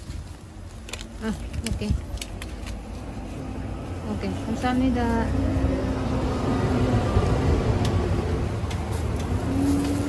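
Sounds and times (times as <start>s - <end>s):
voice: 1.2s - 2.1s, 4.0s - 5.4s.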